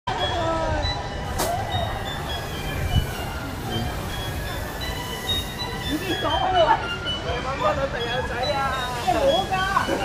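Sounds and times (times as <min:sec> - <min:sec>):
people's voices: 0:00.1 - 0:10.0.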